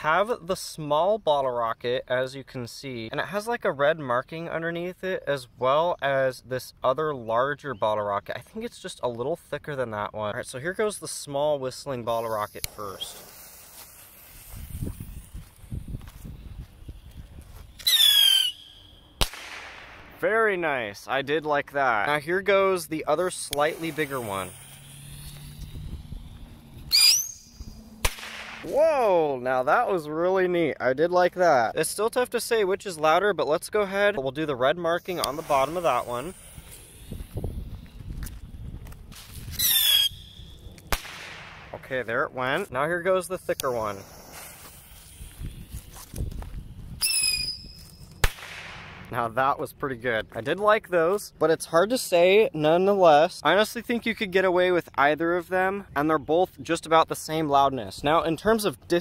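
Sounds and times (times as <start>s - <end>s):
bottle rocket whistle: 17.8s - 19.3s, 23.7s - 27.9s, 39.5s - 40.6s, 47.0s - 48.0s
firework bang: 19.2s - 20.2s, 28.0s - 28.7s.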